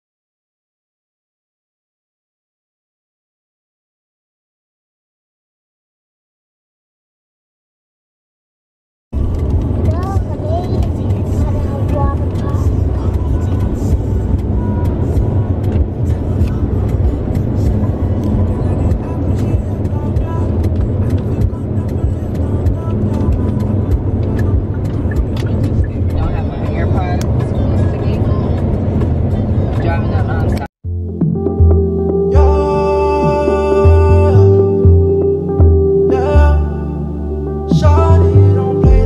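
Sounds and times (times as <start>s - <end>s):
car road and engine rumble: 9.2s - 39.0s.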